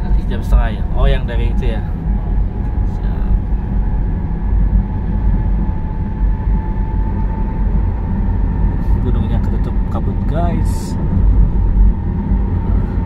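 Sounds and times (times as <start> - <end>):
car road noise rumble: 0.0 - 13.0
faint steady whine: 0.0 - 13.0.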